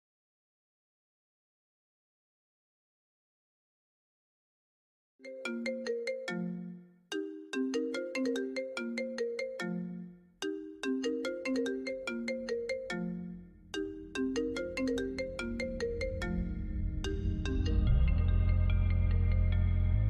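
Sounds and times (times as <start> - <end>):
marimba-like ringtone melody: 5.2 - 19.5
deep bass rumble: 16.0 - 20.0.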